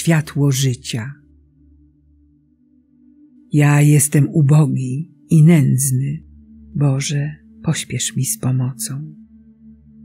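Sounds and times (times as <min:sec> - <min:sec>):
low ambient music drone: 0:00.0 - 0:10.0.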